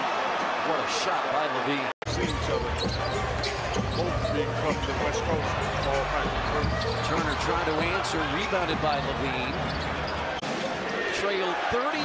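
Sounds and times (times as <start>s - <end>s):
arena noise: 0.0s - 12.0s.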